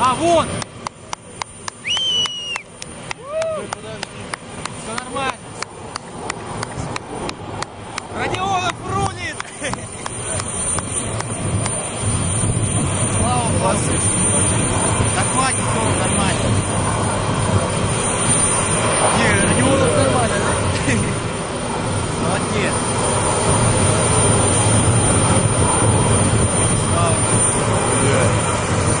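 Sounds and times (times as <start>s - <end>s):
muffled voices: 19.0s - 21.3s.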